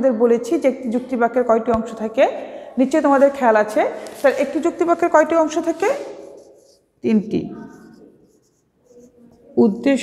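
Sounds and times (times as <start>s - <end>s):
woman speaking: 0.0s - 6.2s, 7.0s - 8.0s, 9.5s - 10.0s
marker pen writing on whiteboard: 2.8s - 10.0s.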